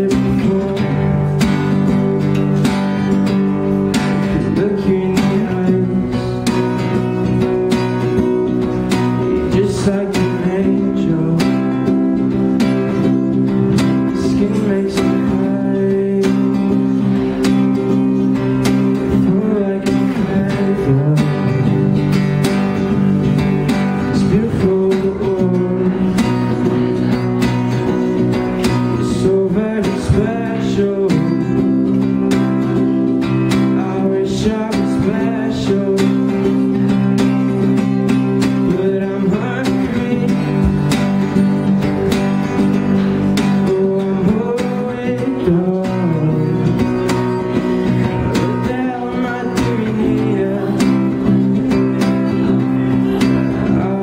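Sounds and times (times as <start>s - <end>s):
man singing: 0.0s - 41.6s, 42.3s - 54.0s
acoustic guitar strumming: 0.0s - 54.0s.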